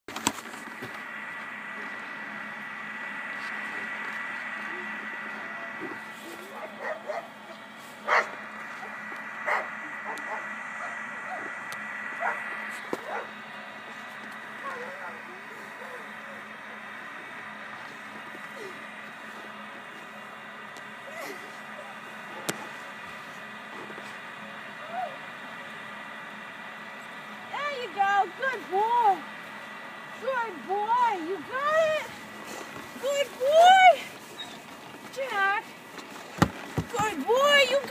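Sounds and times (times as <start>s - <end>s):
dog barking: 6.5s - 7.3s, 8.1s - 8.3s, 9.5s - 11.5s, 12.2s - 12.4s, 13.0s - 13.3s.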